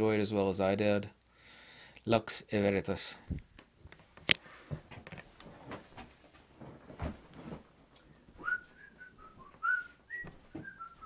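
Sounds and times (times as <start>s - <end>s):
person whistling a tune: 8.4s - 11.0s.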